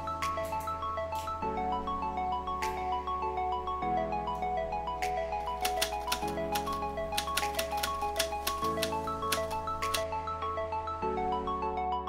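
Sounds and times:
light melodic background music: 0.0s - 12.0s
quick ticking beat: 5.6s - 10.0s.

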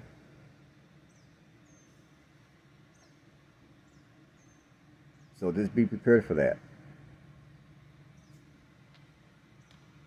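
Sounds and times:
low steady hum: 0.0s - 10.0s
faint high bird chirps: 1.0s - 2.2s, 2.9s - 5.4s, 8.1s - 8.5s.

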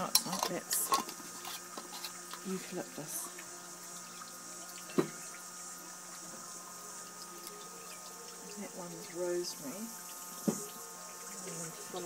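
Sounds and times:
water running: 0.0s - 12.0s.

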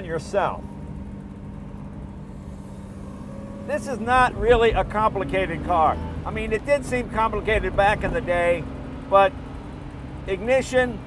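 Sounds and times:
car engine running at low speed: 0.0s - 11.0s
road rumble: 0.0s - 11.0s.

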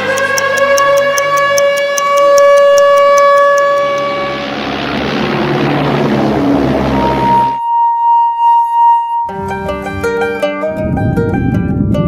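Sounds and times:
fast clock-like ticking: 0.0s - 3.7s
long held note: 0.0s - 4.8s, 6.7s - 10.9s
wash of noise: 4.0s - 7.6s.

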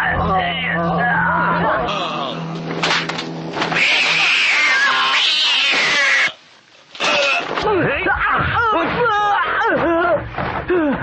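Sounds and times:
cat screeching yowl: 3.6s - 6.4s.

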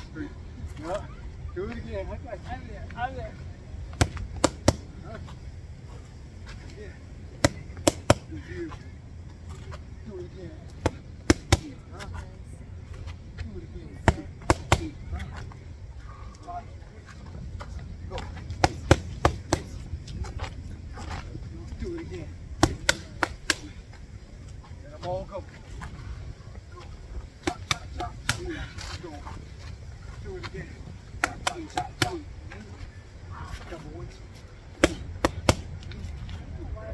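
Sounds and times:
boxing gloves hitting focus mitts: 22.6s - 23.8s.

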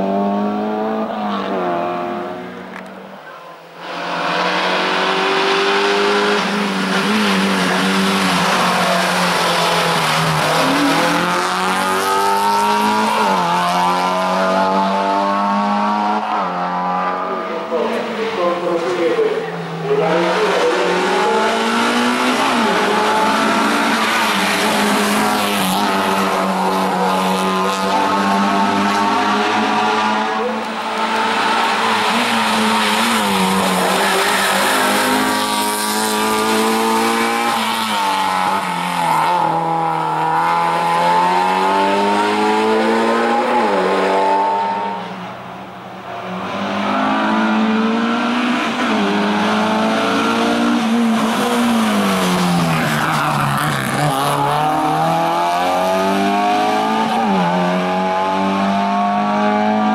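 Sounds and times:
race car engine revving: 0.0s - 2.9s, 3.7s - 59.9s.

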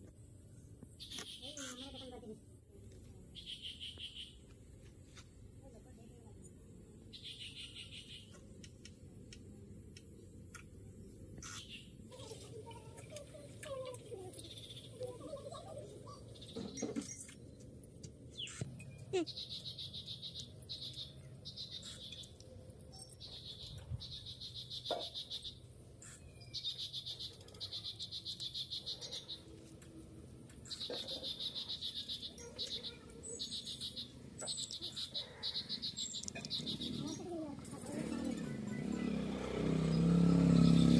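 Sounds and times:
small animals chirping and squeaking: 1.0s - 2.4s, 6.3s - 29.6s, 30.6s - 39.3s.

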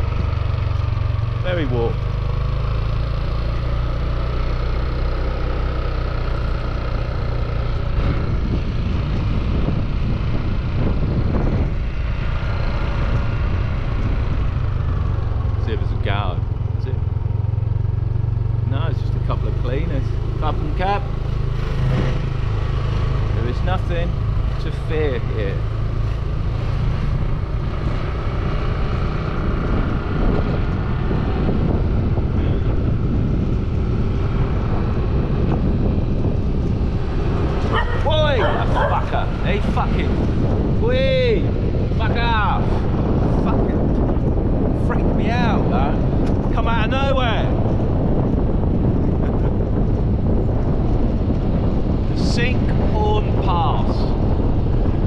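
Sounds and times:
motor scooter engine running: 0.0s - 41.8s
wind and road noise: 0.0s - 55.0s.

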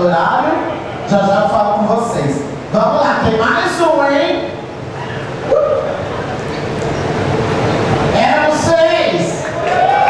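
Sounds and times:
din of crowd voices: 0.0s - 10.0s.

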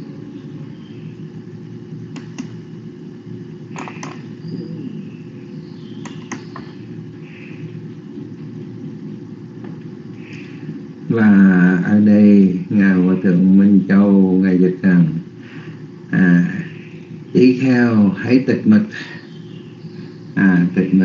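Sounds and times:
low background hum and rumble: 0.0s - 21.0s
sharp clicks: 2.1s - 2.6s, 6.0s - 6.7s.

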